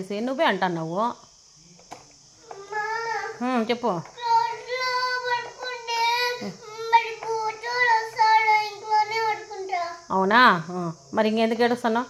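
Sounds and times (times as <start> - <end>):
young child singing: 2.6 - 3.4, 4.2 - 10.0.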